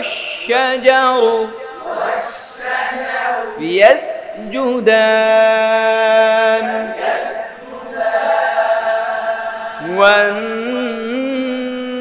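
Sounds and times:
man reciting melodically: 0.0s - 7.9s, 9.8s - 12.0s.

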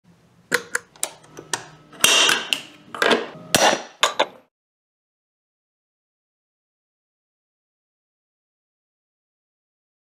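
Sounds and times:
metal enclosure clicks and knocks: 2.0s - 4.4s.

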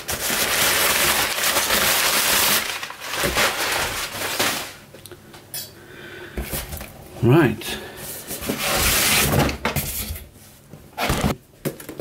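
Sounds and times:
cardboard scraping: 8.3s - 10.0s.

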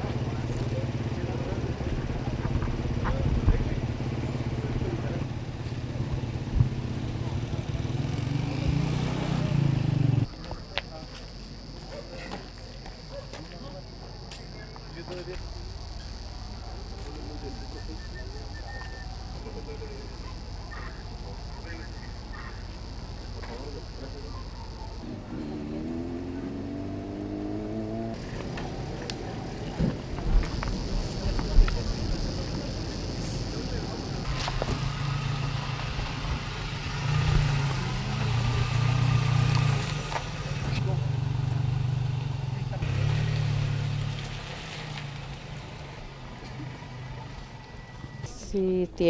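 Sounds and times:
truck engine driving past: 15.4s - 48.3s.

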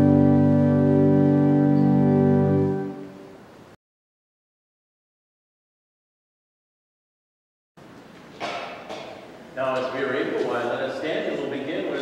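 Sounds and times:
man speaking: 9.6s - 12.0s.

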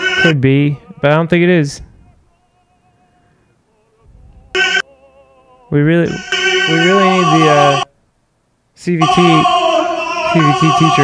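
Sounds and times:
tenor singing: 0.0s - 7.9s, 8.8s - 11.0s.

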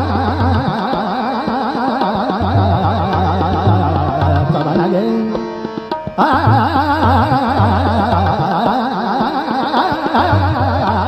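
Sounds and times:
person singing fast runs: 0.0s - 11.0s
tabla playing: 0.0s - 11.0s.

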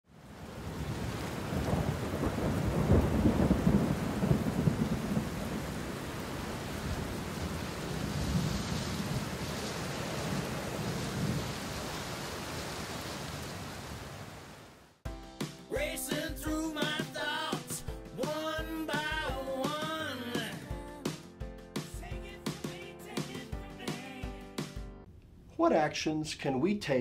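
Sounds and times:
heavy rain: 0.1s - 15.0s
rolling thunder: 0.5s - 11.6s.

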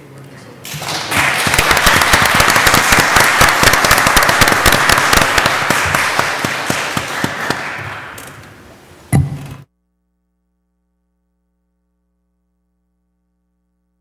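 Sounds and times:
audience applauding: 0.7s - 8.6s.

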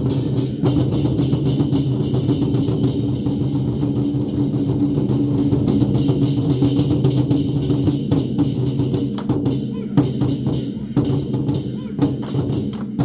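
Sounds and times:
large war drums beating: 0.0s - 13.0s.

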